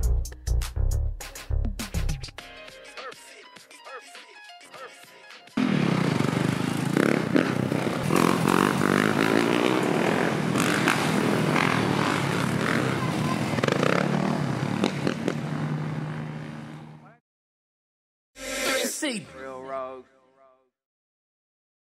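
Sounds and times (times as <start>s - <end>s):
music: 0.0s - 5.6s
dirt bike engines revving: 5.6s - 17.0s.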